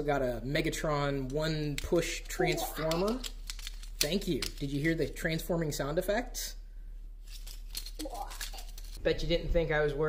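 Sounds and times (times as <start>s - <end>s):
plastic toy clicking and rattling: 1.2s - 5.0s, 7.4s - 9.0s.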